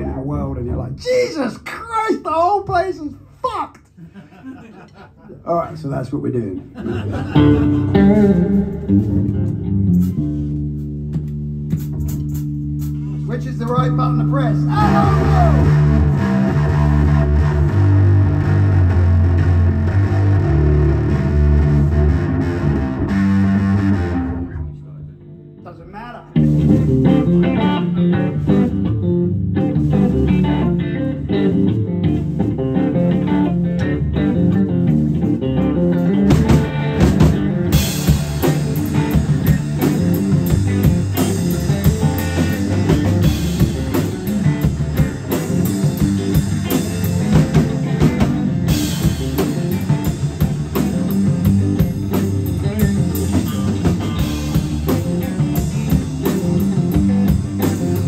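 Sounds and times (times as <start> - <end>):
electric guitar: 6.6 - 25.6, 26.3 - 58.0
electric bass: 6.6 - 58.0
drum kit: 6.7 - 24.8, 26.4 - 58.0.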